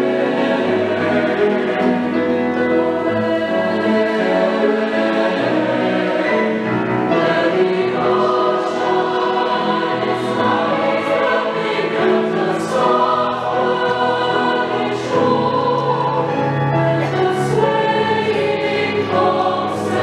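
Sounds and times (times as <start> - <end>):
mixed choir singing: 0.0 - 20.0
piano accompaniment: 0.0 - 20.0.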